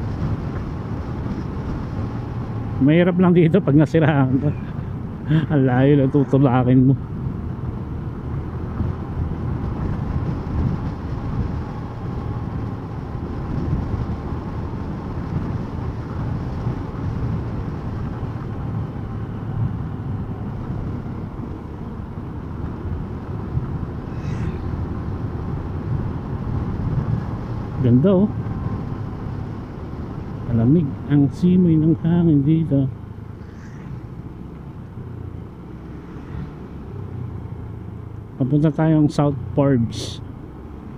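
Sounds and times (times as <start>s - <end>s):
rush of riding noise: 0.0s - 40.9s.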